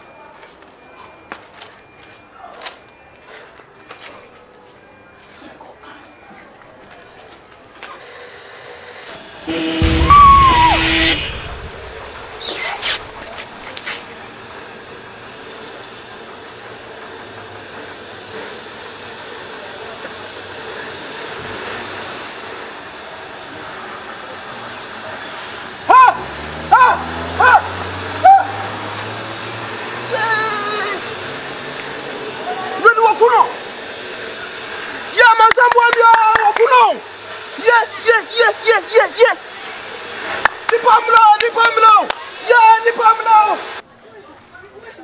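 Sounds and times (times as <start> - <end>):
loud crash: 9.4 - 13.4
background music: 9.5 - 11.8
car horn: 9.5 - 13.2.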